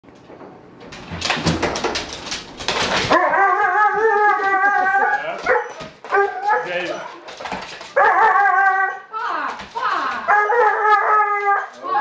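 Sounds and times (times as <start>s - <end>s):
dog yipping: 3.1s - 7.2s, 8.0s - 9.1s.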